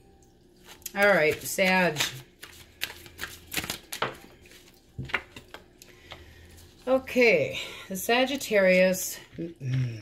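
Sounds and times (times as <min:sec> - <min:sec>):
cards clicking and snapping: 0:01.4 - 0:06.2.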